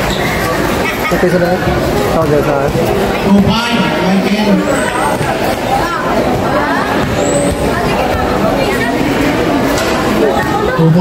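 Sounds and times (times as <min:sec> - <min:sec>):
people talking and calling out: 0:00.0 - 0:11.0
steady background noise: 0:00.0 - 0:11.0.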